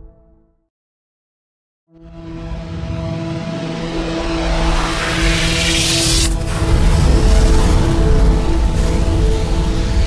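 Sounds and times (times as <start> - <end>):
hissing whoosh: 4.4 - 6.8.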